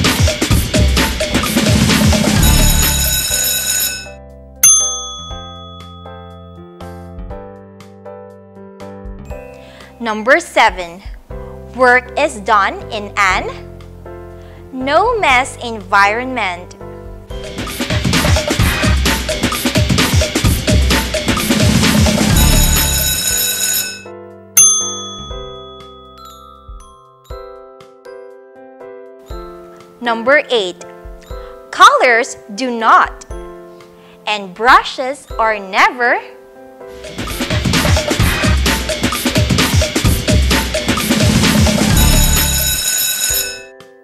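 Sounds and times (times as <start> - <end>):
background music: 0.0 - 44.0
bright ringing tone: 2.4 - 6.7, 22.4 - 27.3, 42.0 - 43.7
loud bell-like ding: 4.6 - 6.7, 24.6 - 27.2.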